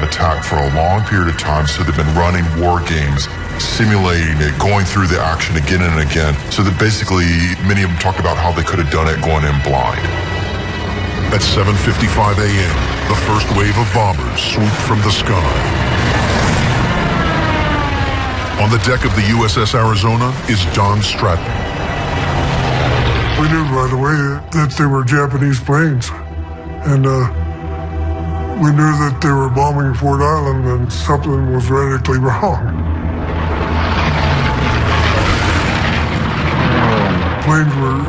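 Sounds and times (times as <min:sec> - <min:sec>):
low rumble: 0:00.0 - 0:38.0
propeller plane engine diving: 0:00.0 - 0:38.0.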